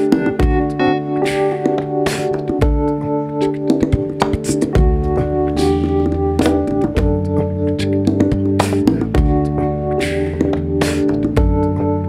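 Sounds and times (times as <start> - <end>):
electric bass guitar: 0.0 - 12.0
sustained chords: 0.0 - 12.0
steady drum beat: 3.8 - 7.4, 8.0 - 11.6.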